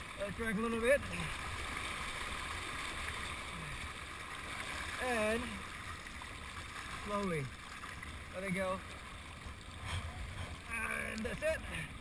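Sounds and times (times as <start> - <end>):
choppy water lapping: 0.0 - 12.0
low rumble: 9.2 - 11.1.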